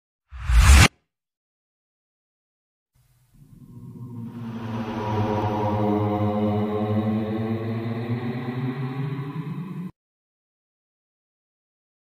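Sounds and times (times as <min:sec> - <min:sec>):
whoosh sound effect: 0:00.3 - 0:00.9.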